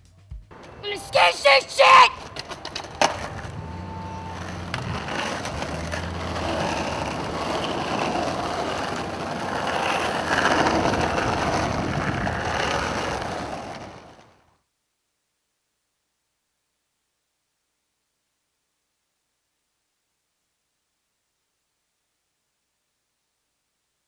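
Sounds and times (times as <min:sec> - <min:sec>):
skateboard clacking: 0:00.5 - 0:14.3
skateboard wheels rolling on asphalt: 0:00.5 - 0:14.5.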